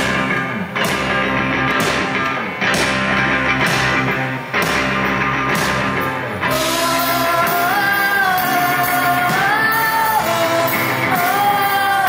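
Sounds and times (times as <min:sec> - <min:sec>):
bass guitar: 0:00.0 - 0:12.0
electric guitar: 0:00.0 - 0:12.0
rock band playing: 0:00.0 - 0:12.0.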